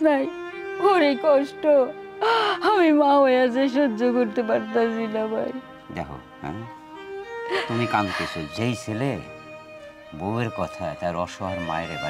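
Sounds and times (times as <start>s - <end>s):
bowed string music: 0.0s - 12.0s.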